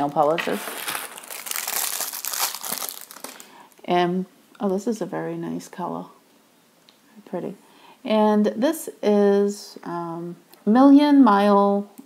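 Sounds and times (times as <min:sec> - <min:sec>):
tissue paper crinkling: 0:00.0 - 0:03.7.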